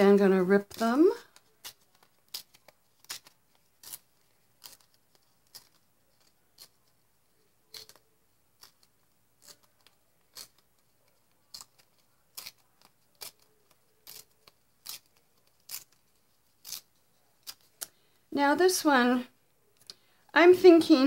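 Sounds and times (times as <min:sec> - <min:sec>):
paper tearing: 0:00.6 - 0:07.0, 0:07.7 - 0:17.9.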